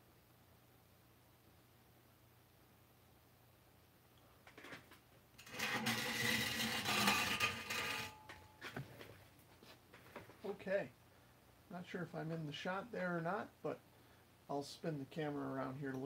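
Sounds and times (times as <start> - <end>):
rubbing and scraping on microphone: 4.6 - 10.5.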